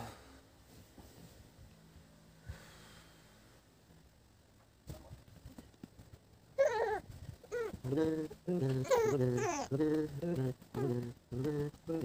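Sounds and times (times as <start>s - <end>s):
soft knocks and rustles: 0.6s - 1.6s
infant crying: 6.6s - 7.8s, 8.8s - 9.8s.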